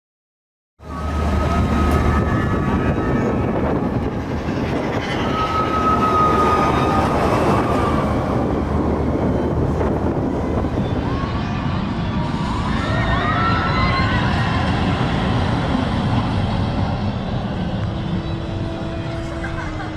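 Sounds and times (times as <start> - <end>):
roller coaster rumbling on track: 0.8 - 19.9
high wheel squeal: 0.9 - 19.9.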